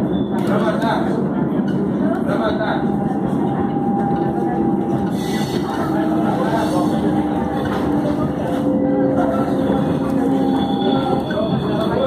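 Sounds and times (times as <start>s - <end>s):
train rolling noise: 0.0s - 12.0s.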